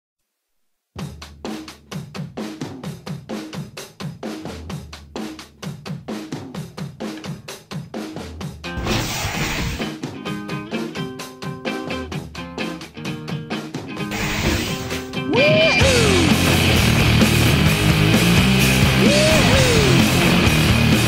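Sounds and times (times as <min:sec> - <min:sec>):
drum-kit beat: 0:01.0 - 0:21.0.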